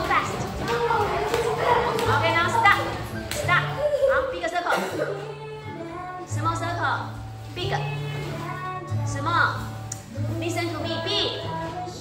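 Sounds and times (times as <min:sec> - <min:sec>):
children calling out: 0:00.0 - 0:04.5
music playing: 0:00.0 - 0:12.0.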